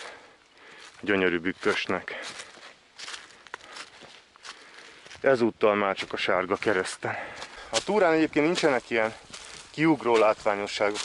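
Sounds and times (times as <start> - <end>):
footsteps in dry leaves: 0.0 - 11.0.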